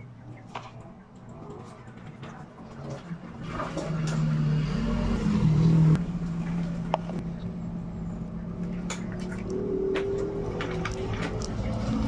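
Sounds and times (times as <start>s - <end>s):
motor engine droning: 2.8s - 12.0s.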